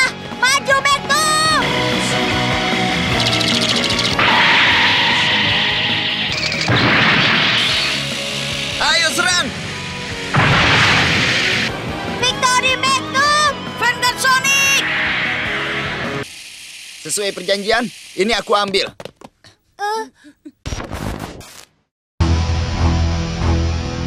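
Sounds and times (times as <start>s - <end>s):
cartoon background music: 0.0s - 5.0s, 10.3s - 14.9s
high-pitched shout: 0.4s - 1.7s
whooshing crash effects: 4.2s - 12.2s, 14.6s - 16.3s.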